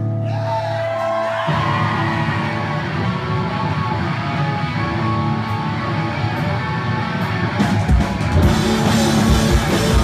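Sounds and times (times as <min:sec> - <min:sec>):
live rock band playing: 0:01.1 - 0:10.0.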